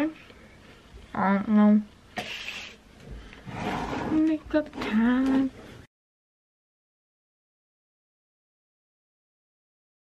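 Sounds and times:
breathy puff: 2.2 - 2.8.

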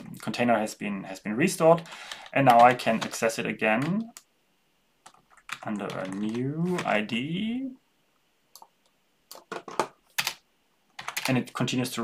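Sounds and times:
computer keyboard typing: 1.8 - 4.3, 5.0 - 7.0, 9.3 - 10.4, 11.0 - 11.4.

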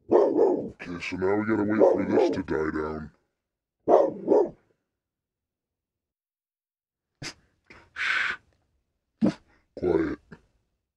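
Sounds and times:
dog barking: 0.0 - 0.8, 1.7 - 2.4, 3.9 - 4.6.

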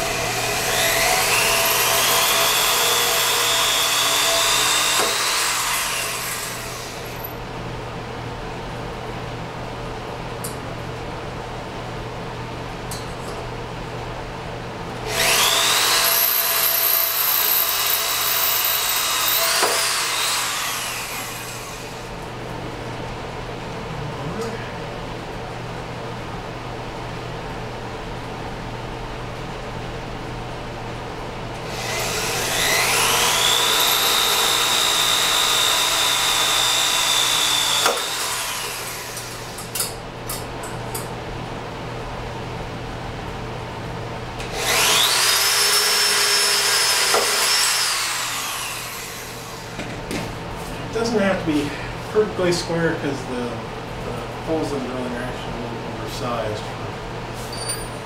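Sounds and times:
cordless drill drilling into steel: 0.1 - 7.1, 15.1 - 22.0, 31.7 - 39.6, 44.5 - 49.7.

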